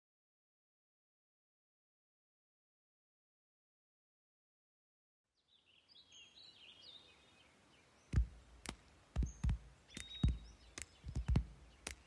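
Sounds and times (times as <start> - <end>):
faint bird chirps: 5.3 - 12.0
hand percussion strikes: 8.2 - 12.0.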